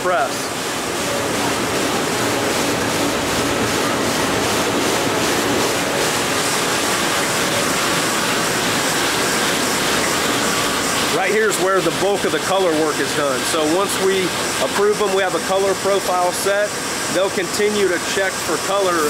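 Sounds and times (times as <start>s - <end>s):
printing press running: 0.0s - 19.0s.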